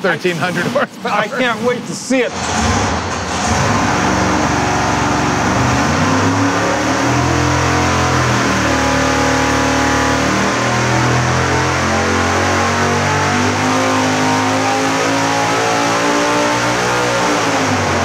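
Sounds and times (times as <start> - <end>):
car engine revving: 2.3 - 18.0.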